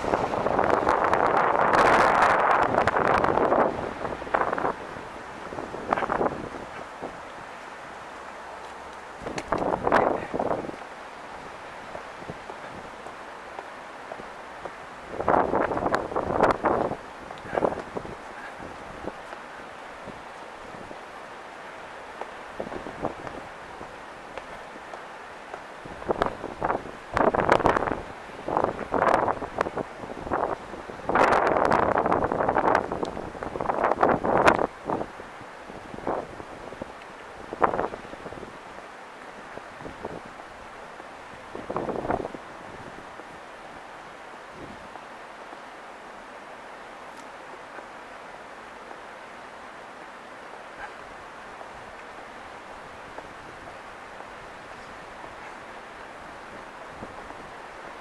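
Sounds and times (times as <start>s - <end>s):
wind buffeting microphone: 0.0s - 7.5s, 9.1s - 21.1s, 22.2s - 25.0s, 25.8s - 43.8s, 50.8s - 58.0s
steady background hiss: 0.0s - 58.0s.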